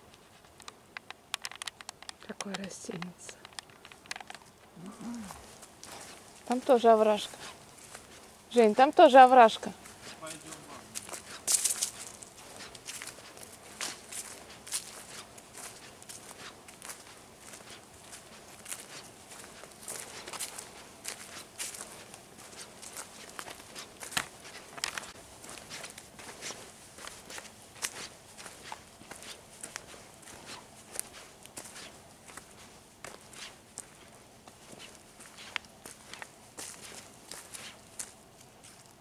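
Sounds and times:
footsteps on dry leaves: 4.4 - 39.0.

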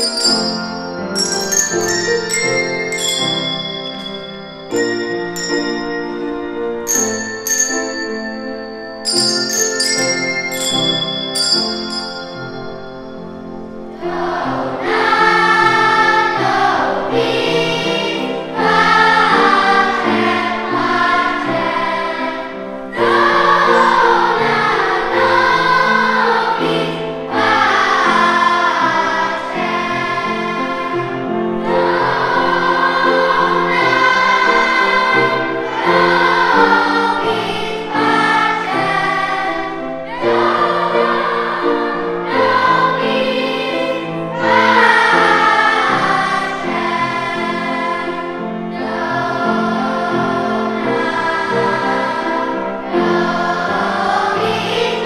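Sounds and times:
children's choir singing: 0.0 - 55.0
steady accompanying notes: 0.0 - 55.0.

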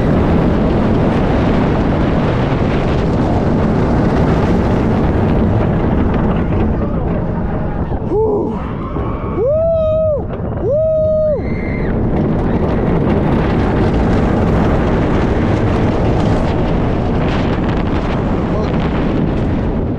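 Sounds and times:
wind buffeting microphone: 0.0 - 19.9.

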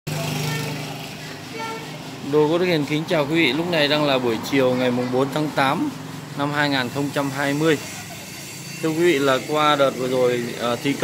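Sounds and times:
vehicle engine running: 0.1 - 11.0.

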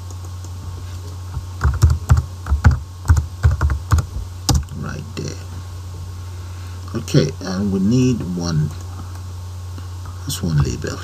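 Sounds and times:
steady low hum: 0.0 - 11.0
keyboard typing: 1.3 - 4.7.

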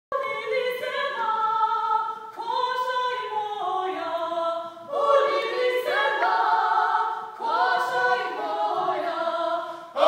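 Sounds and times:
mixed choir singing unaccompanied: 0.2 - 10.0.

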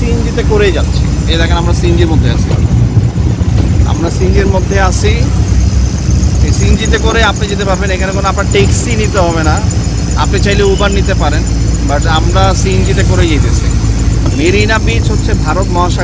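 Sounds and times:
rickshaw engine rumbling: 0.0 - 16.0
voices talking: 0.0 - 16.0.

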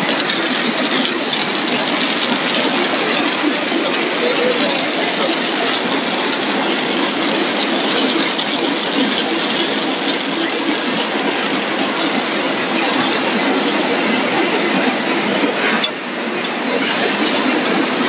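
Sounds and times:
dense mechanical machine noise: 0.0 - 18.0.

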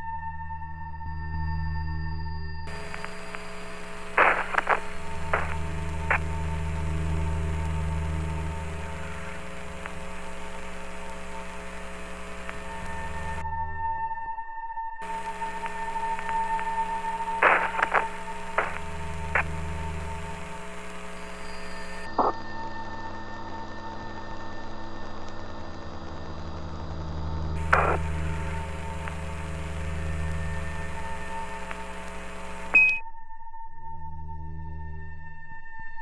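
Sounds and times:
crackling clicks: 2.7 - 13.4, 15.0 - 22.4, 24.2 - 32.8
radio hum and hiss: 2.7 - 13.4, 15.0 - 23.3, 24.3 - 33.0
short high beep: 32.8 - 33.0.

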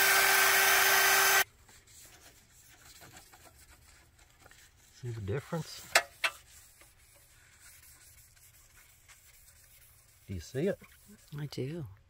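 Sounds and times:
cloth rubbing on chrome: 1.2 - 11.8.

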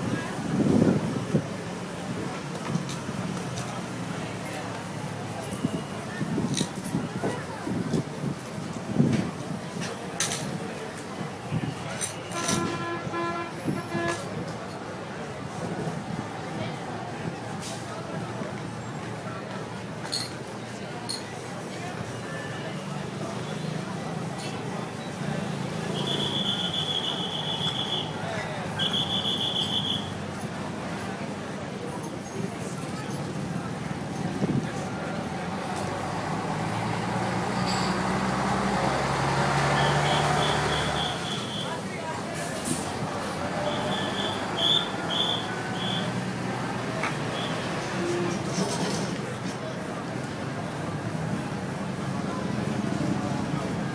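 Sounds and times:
busy street noise: 0.0 - 53.9
horn tooting: 12.0 - 14.4, 25.8 - 30.2, 39.4 - 41.8, 43.5 - 46.2
diesel lorry engine driving past: 35.0 - 48.5.

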